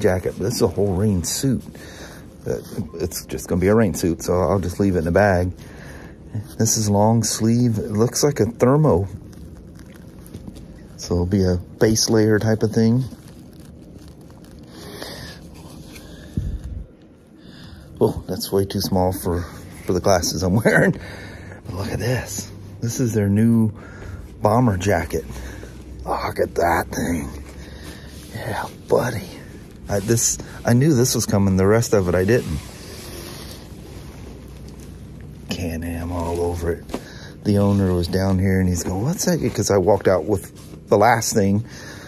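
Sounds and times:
nylon jacket rustling: 0:00.0 - 0:17.4, 0:24.1 - 0:42.0
plastic packaging rustling: 0:00.0 - 0:17.4.

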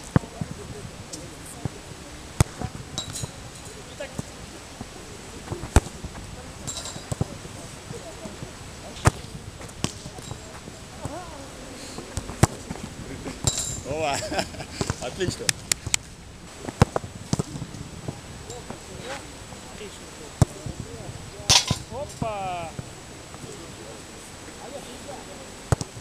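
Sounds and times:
faint distant voices: 0:00.0 - 0:26.0.

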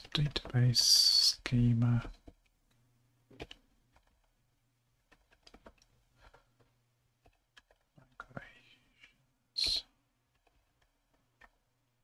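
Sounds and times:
keyboard typing: 0:00.0 - 0:04.4, 0:05.0 - 0:08.2, 0:09.6 - 0:11.7.

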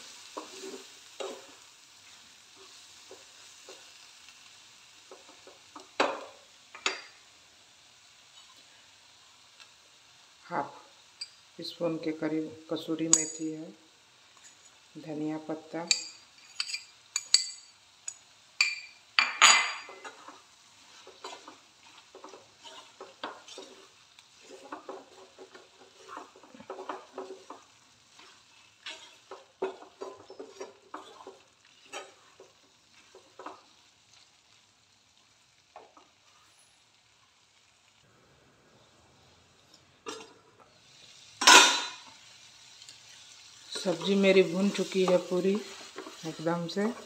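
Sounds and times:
faint sizzle: 0:00.0 - 0:47.0
wooden spatula scraping pan: 0:00.3 - 0:01.6, 0:19.8 - 0:33.7, 0:43.8 - 0:47.0.

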